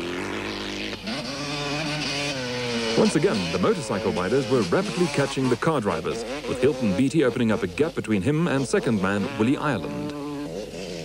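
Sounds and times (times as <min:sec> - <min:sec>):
dirt bike engine running hard: 0:00.0 - 0:11.0.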